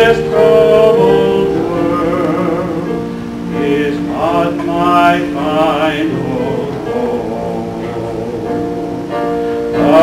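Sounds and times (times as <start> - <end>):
instrumental accompaniment: 0.0 - 10.0
man singing with vibrato: 0.0 - 10.0.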